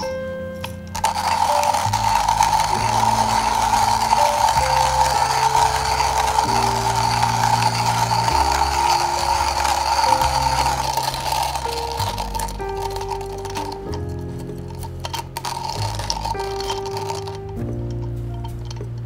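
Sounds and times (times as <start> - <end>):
background music: 0.0 - 19.0
hand coffee grinder grinding: 0.6 - 19.0.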